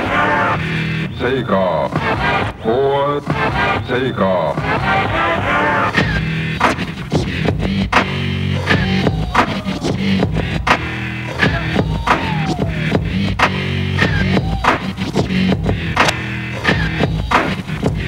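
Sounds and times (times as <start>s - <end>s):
vinyl scratching: 0.0s - 18.0s
stepping bass notes: 4.6s - 18.0s.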